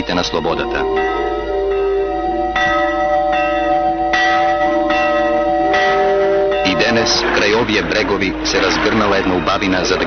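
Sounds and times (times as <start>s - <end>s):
large church bell ringing: 0.0s - 10.0s.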